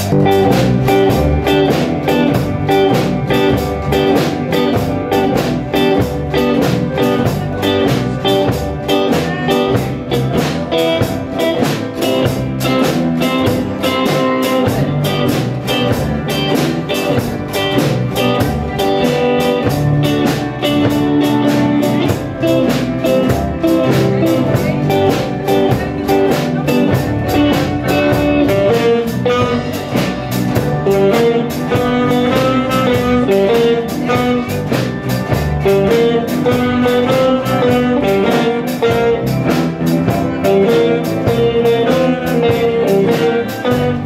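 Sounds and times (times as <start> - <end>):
drum kit steady beat: 0.0 - 44.0
guitars strumming chords: 0.0 - 44.0
keyboards: 0.0 - 44.0
saxophone: 18.2 - 44.0.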